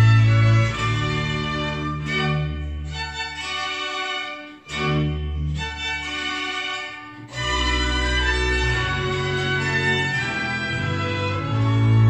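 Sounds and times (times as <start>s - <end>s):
folk string band playing: 0.0s - 12.0s.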